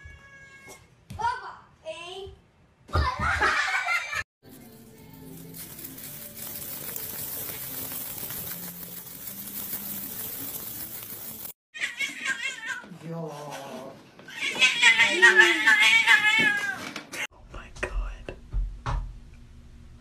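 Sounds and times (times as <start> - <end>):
cat yowling: 11.8 - 12.8, 14.3 - 16.8.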